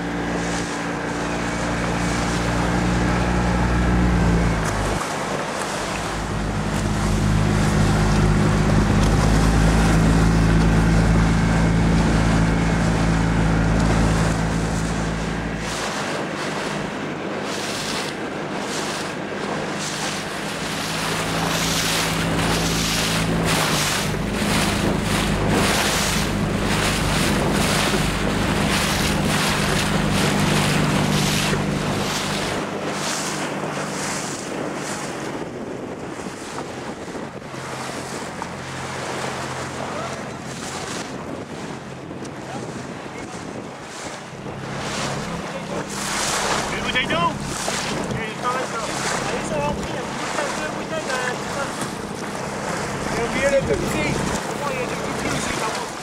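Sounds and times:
motorboat engine droning: 0:00.0 - 0:56.0
waves washing: 0:00.0 - 0:56.0
wind buffeting microphone: 0:00.0 - 0:56.0.

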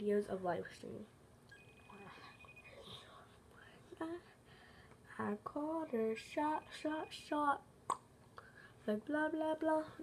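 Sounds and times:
girl whispering: 0:02.0 - 0:04.3.

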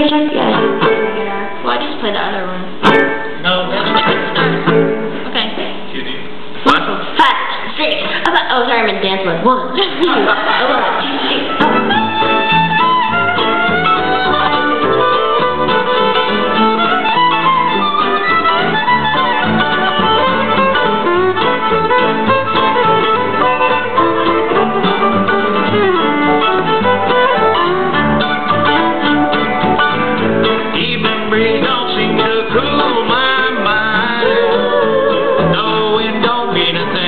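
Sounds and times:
plucked banjo: 0:00.0 - 0:01.9, 0:02.8 - 0:05.3, 0:10.1 - 0:37.0
fiddle melody: 0:00.0 - 0:05.2, 0:11.0 - 0:37.0
walking upright bass: 0:00.0 - 0:05.9, 0:10.0 - 0:37.0
guitar: 0:00.0 - 0:37.0.

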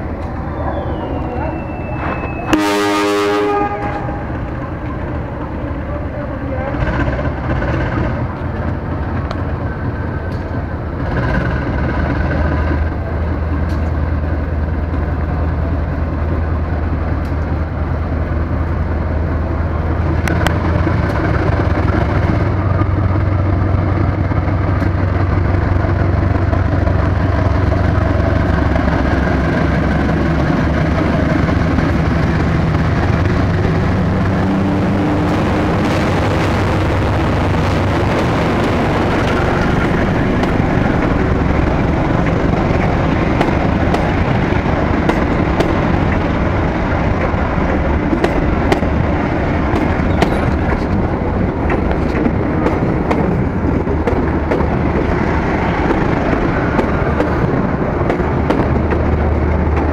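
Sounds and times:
locomotive engine rumble: 0:00.0 - 0:59.9
locomotive horn blast: 0:00.6 - 0:04.4.

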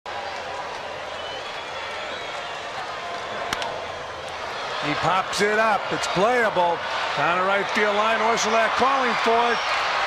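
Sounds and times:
stadium crowd din: 0:00.1 - 0:10.0
bat cracking against ball: 0:03.5 - 0:03.8.

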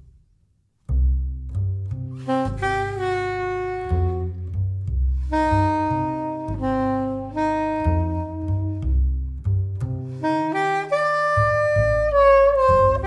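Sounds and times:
double bass line: 0:00.0 - 0:13.0
saxophone slow melody: 0:02.1 - 0:13.0.

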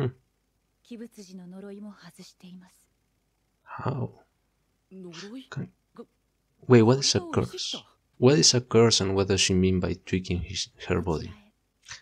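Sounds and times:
woman speaking softly: 0:00.8 - 0:02.9, 0:04.9 - 0:06.1, 0:06.9 - 0:08.0, 0:10.9 - 0:11.6.

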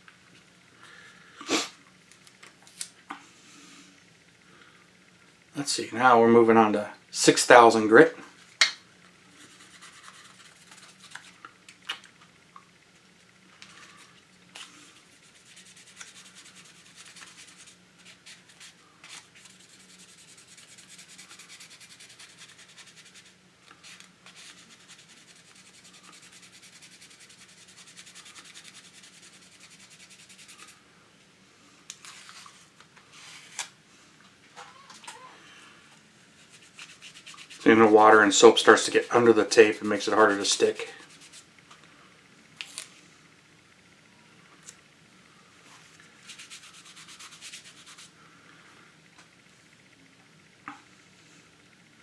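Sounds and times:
wet sanding pad scrubbing: 0:36.4 - 0:39.8.

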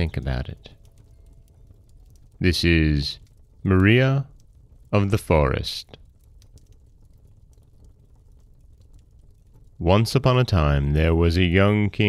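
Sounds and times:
faint room hum: 0:00.0 - 0:12.0
light clicks: 0:05.8 - 0:09.8.

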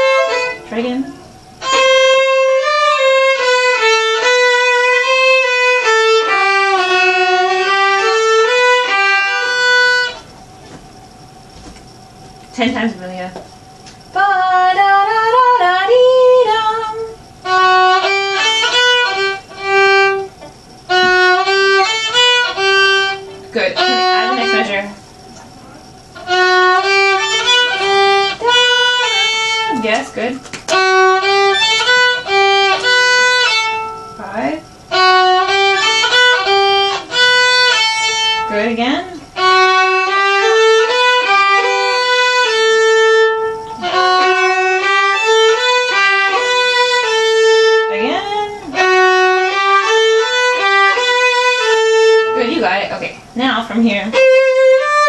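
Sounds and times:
two violins playing: 0:00.0 - 0:10.3, 0:14.8 - 0:25.0, 0:26.1 - 0:55.0.

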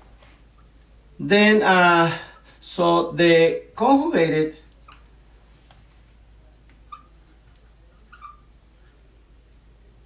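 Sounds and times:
marker squeaking on whiteboard: 0:04.8 - 0:05.2, 0:06.8 - 0:09.0.

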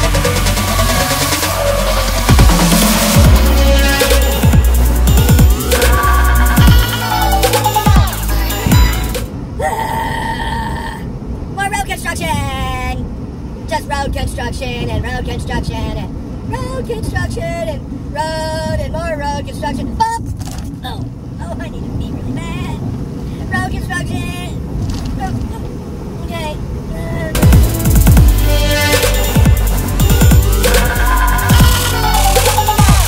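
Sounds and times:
truck cab rumble: 0:00.0 - 0:09.6, 0:11.2 - 0:33.0
person making wordless vocal sounds: 0:05.4 - 0:11.1.

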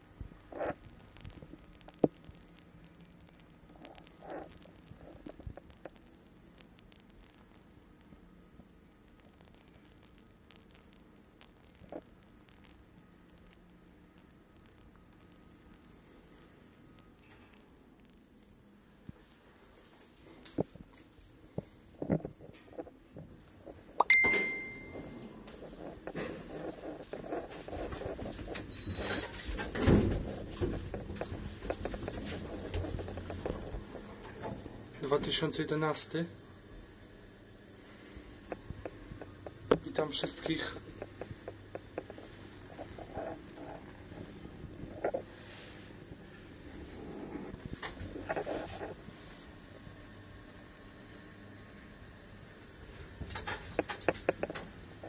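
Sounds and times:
single-tone lift chime: 0:24.0 - 0:25.1.

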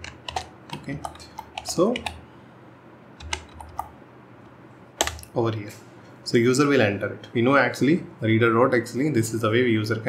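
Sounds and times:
faint background hum: 0:00.0 - 0:10.0
keyboard key clicks: 0:03.2 - 0:03.9, 0:05.0 - 0:05.3.

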